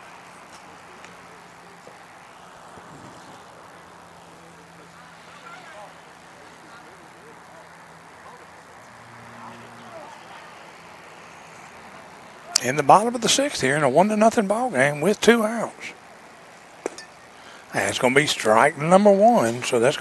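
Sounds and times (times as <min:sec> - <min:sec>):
distant voices: 0:00.0 - 0:20.0
steady low hum: 0:00.0 - 0:20.0.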